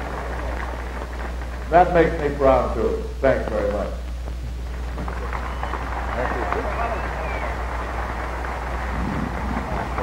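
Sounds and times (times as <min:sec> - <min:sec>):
film soundtrack hiss and crackle: 0:00.0 - 0:10.0.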